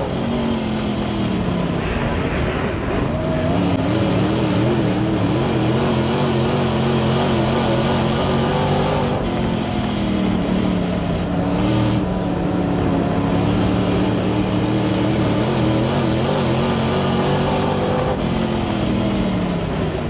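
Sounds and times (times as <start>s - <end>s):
race car engine running: 0.0s - 20.0s.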